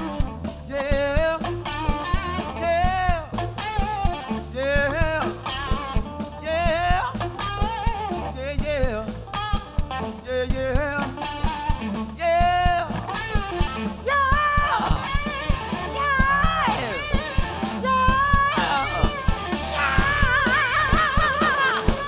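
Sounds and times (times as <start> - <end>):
bass guitar: 0.0 - 22.0
drum kit: 0.0 - 22.0
electric guitar lead line: 0.0 - 22.0.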